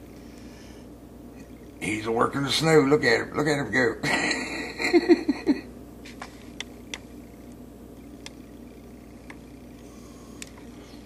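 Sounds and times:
man chuckling: 4.0s - 5.7s.

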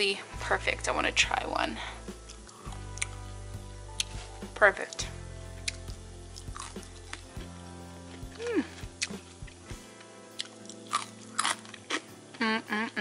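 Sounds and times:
quiet background music: 0.0s - 13.0s
person chewing crispy food: 2.2s - 3.3s, 3.9s - 4.2s, 5.6s - 9.3s, 10.4s - 12.1s.

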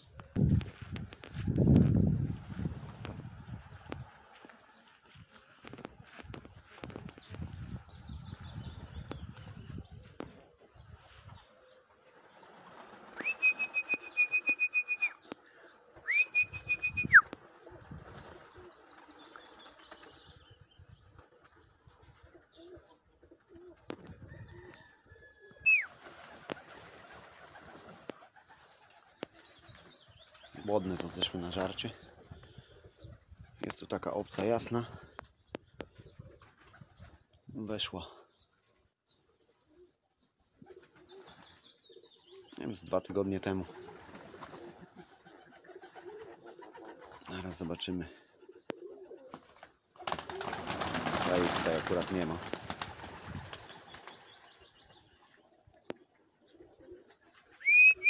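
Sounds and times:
pigeon wings flapping: 12.0s - 20.2s, 25.9s - 32.4s, 43.6s - 47.4s, 49.1s - 54.5s
pulsing whistle: 13.2s - 15.2s, 16.1s - 17.2s, 57.6s - 58.0s
short falling whistle: 13.2s - 15.2s, 57.6s - 58.0s.

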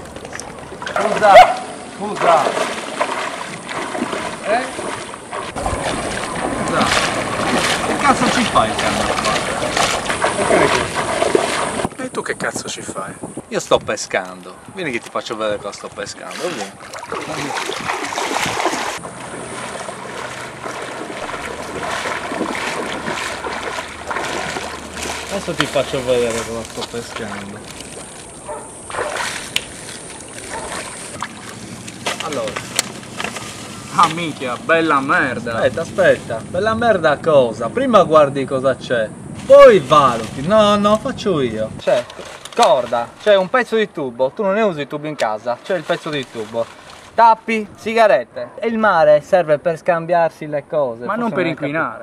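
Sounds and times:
feet splashing in water: 0.0s - 11.9s, 16.1s - 36.4s, 41.8s - 43.4s, 45.2s - 47.2s
wind buffeting microphone: 0.0s - 43.2s.

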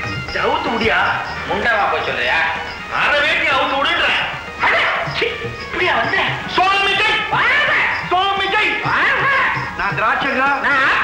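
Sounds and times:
background music: 0.0s - 11.0s
voice making dog-like yelps: 4.6s - 5.2s, 7.2s - 8.1s, 8.9s - 9.8s.

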